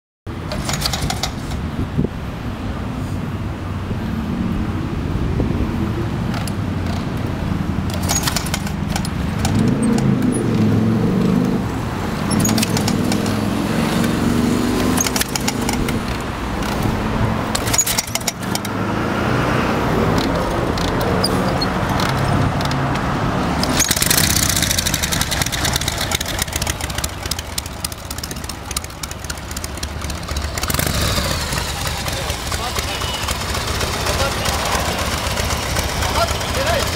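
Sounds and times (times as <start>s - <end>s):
metallic clicks and rattles: 0.5s - 1.6s, 6.3s - 10.6s, 12.3s - 13.4s, 14.8s - 16.9s, 17.5s - 18.8s, 20.1s - 30.9s
motorcycle engine idling: 23.9s - 36.9s.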